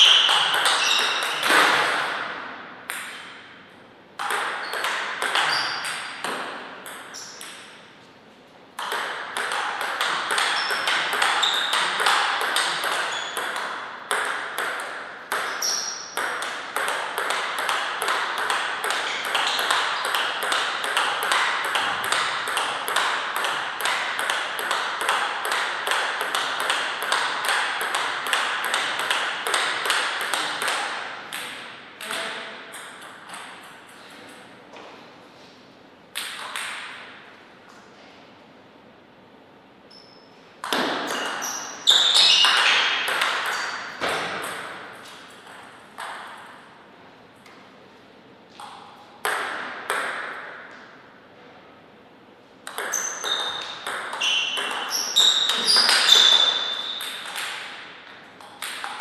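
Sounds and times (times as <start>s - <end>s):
table tennis ball hits: 0.0s - 3.6s, 4.2s - 8.0s, 8.8s - 34.0s, 36.2s - 37.2s, 40.6s - 46.7s, 48.5s - 50.9s, 52.6s - 59.0s.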